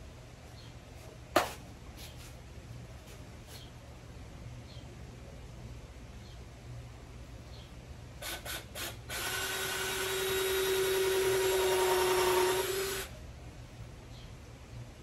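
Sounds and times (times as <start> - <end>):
cordless drill driving screw into wood: 8.2 - 13.1.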